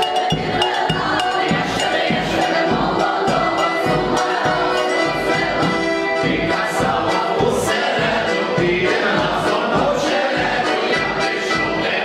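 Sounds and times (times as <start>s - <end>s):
accordion: 0.0s - 12.0s
group singing a folk song: 0.0s - 12.0s.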